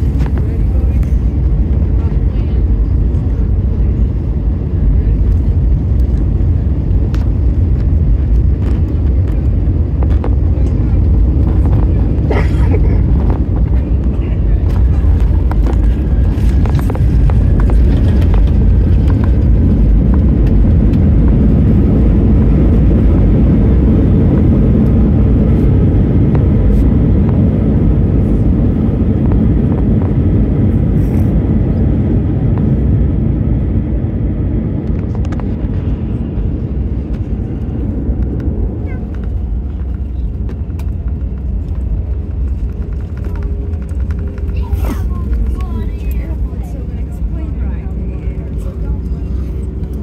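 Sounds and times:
jet engines and wheels rumbling: 0:00.0 - 0:50.0.

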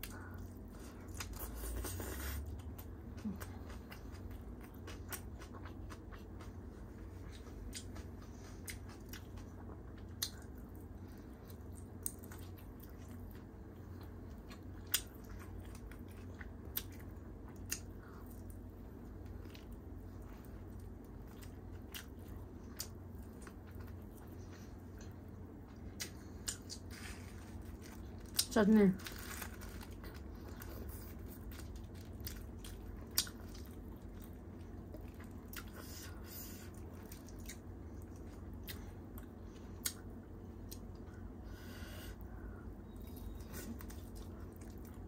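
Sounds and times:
low hum: 0:00.0 - 0:45.0.

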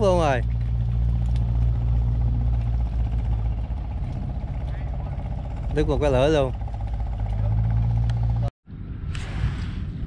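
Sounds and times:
motor humming steadily: 0:00.0 - 0:08.5.

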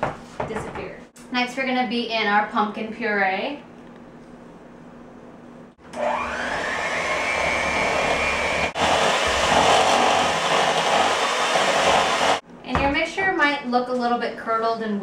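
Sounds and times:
electric mixer whirring: 0:05.8 - 0:12.4.

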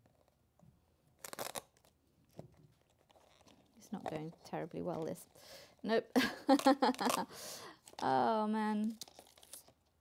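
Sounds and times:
masking tape ripping off roll: 0:01.2 - 0:02.0, 0:06.5 - 0:07.3, 0:08.8 - 0:09.8.

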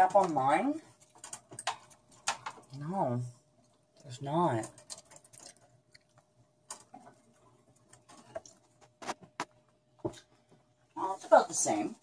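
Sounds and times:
rats clicking on wire cage bars: 0:00.0 - 0:02.8, 0:04.4 - 0:07.2.

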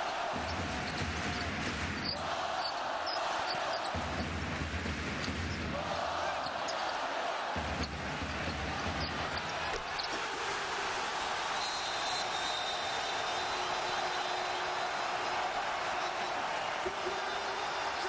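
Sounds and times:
crowd noise in arena: 0:00.0 - 0:18.0
basketball bouncing on court: 0:00.2 - 0:02.7, 0:07.5 - 0:10.1.

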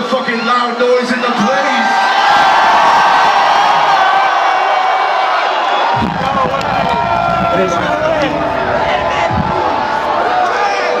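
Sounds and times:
crowd cheering and whooping: 0:01.4 - 0:11.0
dubstep music: 0:06.0 - 0:10.7.

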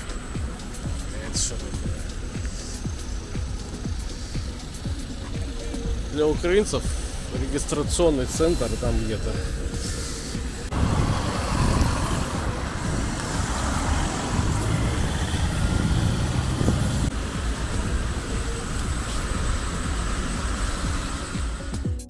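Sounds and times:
cars driving: 0:00.0 - 0:22.0.

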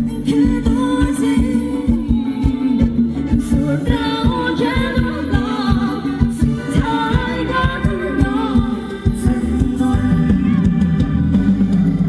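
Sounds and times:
live band music through pa: 0:00.0 - 0:12.0
steady drum beat: 0:00.0 - 0:12.0
strong bass line: 0:00.0 - 0:12.0.

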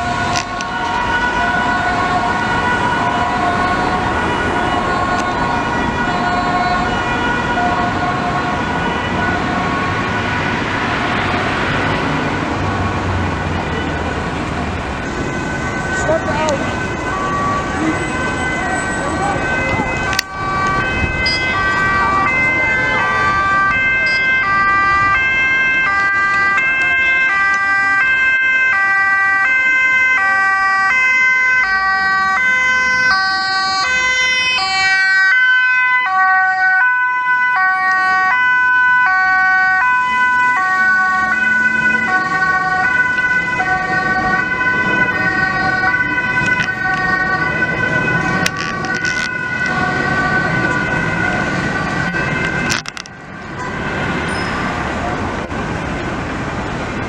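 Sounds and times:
ambulance two-tone siren: 0:00.0 - 0:57.0.

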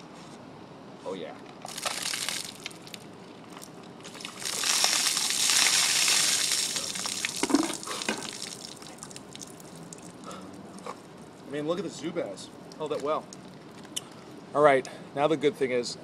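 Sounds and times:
water gushing from bucket: 0:01.6 - 0:03.0, 0:04.0 - 0:10.2
water dripping and splashing on pavement: 0:01.6 - 0:10.2, 0:12.7 - 0:13.9.

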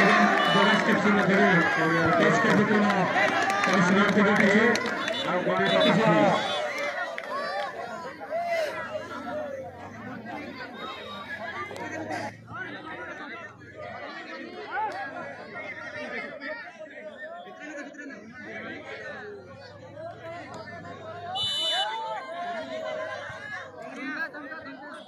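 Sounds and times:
crowd chattering: 0:00.0 - 0:25.0.

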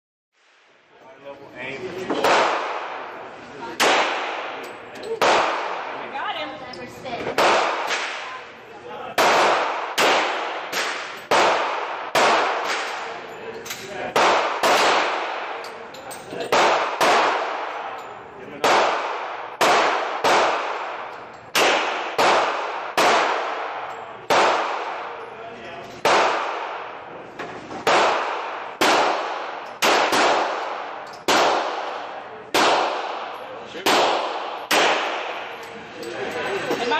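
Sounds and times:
pistol shots echoing: 0:02.1 - 0:06.1, 0:07.3 - 0:08.5, 0:09.1 - 0:13.3, 0:14.1 - 0:25.3, 0:26.0 - 0:35.8.

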